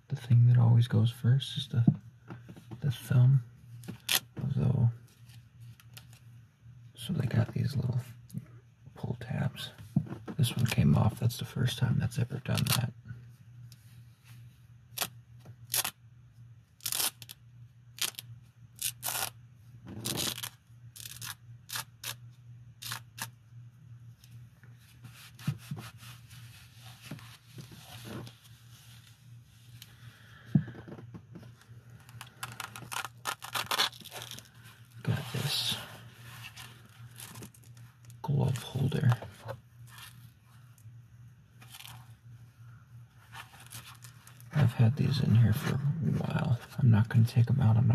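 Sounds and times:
velcro ripping and pressing: 3.9 - 4.3, 14.9 - 16.0, 16.8 - 22.2, 22.8 - 23.4, 32.0 - 34.6, 36.8 - 37.8
gloves rustling on fabric: 24.1 - 30.8.

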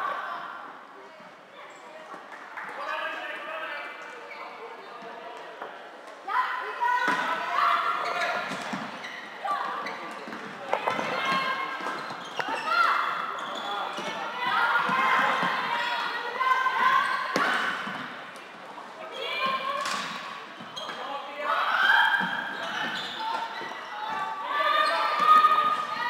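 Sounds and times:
voices shouting and calling: 6.2 - 26.0.

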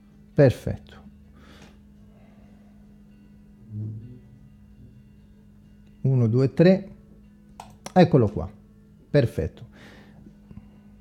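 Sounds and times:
low electrical hum: 0.0 - 11.0
soft breath: 1.4 - 4.5, 9.7 - 11.0
man murmuring: 3.6 - 4.5.

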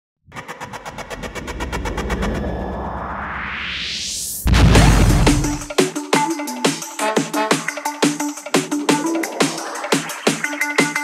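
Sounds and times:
deep rumble: 0.2 - 5.7.

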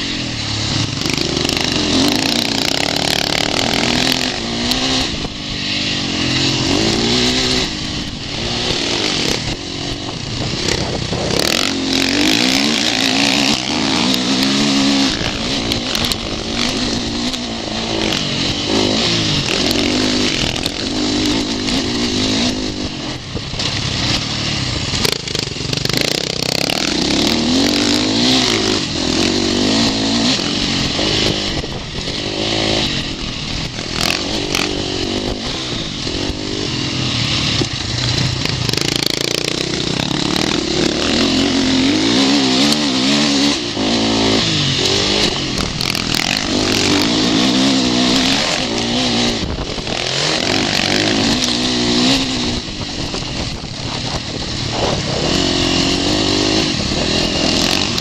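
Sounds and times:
loud rush of noise: 0.0 - 58.0
motocross engine revving: 0.0 - 58.0.

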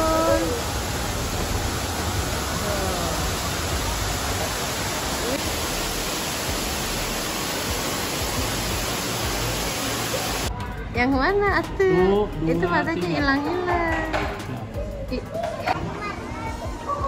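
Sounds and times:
water rushing down waterfall: 0.0 - 10.5.

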